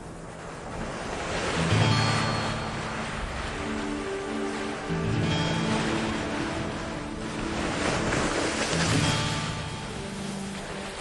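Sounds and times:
rushing wash of noise: 0:00.0 - 0:11.0
soft soundtrack music: 0:00.1 - 0:11.0.

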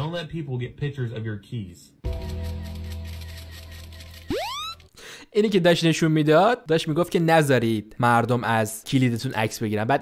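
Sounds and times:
upward pitch sweep: 0:04.3 - 0:04.8.

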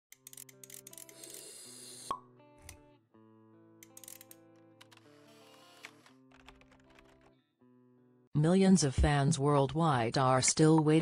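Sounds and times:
background music: 0:00.1 - 0:11.0.

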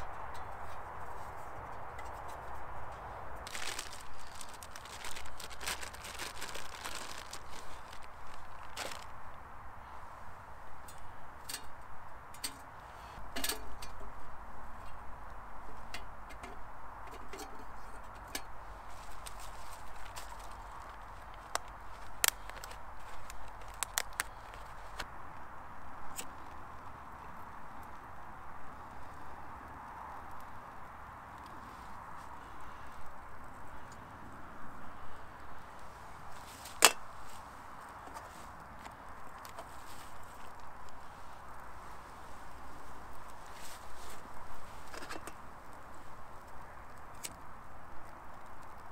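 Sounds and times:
sticks snapping: 0:19.1 - 0:25.1.

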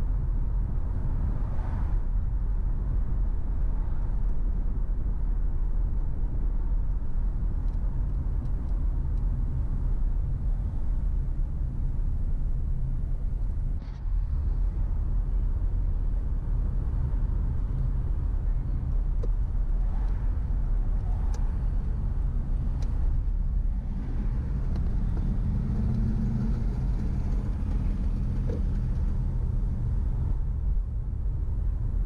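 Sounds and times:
car engine and tyre rumble: 0:00.0 - 0:32.0.

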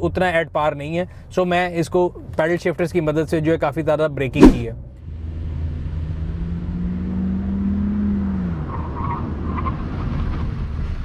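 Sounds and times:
road and wind rumble: 0:00.0 - 0:11.0.

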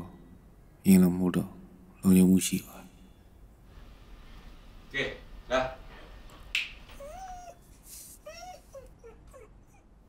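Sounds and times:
animal whimpering: 0:07.0 - 0:10.0.

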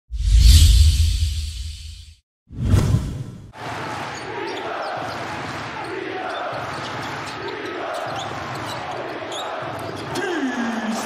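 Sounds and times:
sneakers squeaking: 0:03.9 - 0:10.4.

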